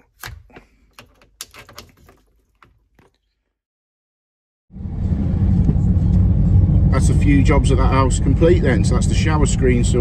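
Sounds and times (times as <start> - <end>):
plastic valve fittings clicking: 0.2 - 2.7.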